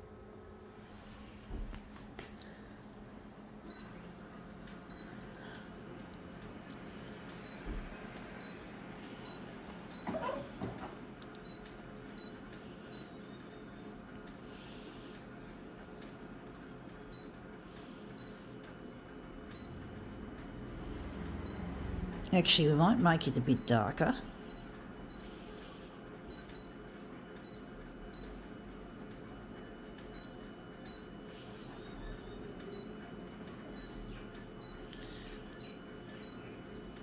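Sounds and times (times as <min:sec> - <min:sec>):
faint steady hum: 0:00.0 - 0:32.1.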